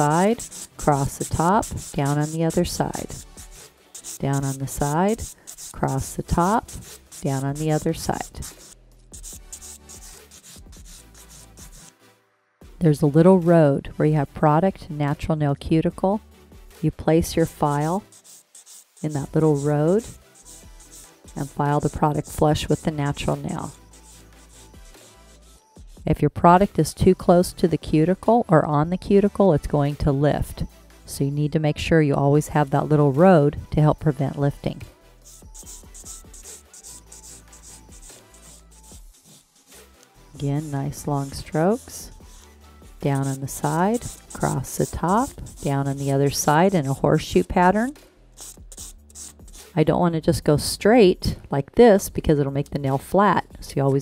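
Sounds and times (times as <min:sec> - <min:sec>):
nail file rasping: 0:00.0 - 0:11.9, 0:17.3 - 0:26.0, 0:35.3 - 0:47.8, 0:48.4 - 0:49.8
faint background music: 0:00.0 - 0:54.0.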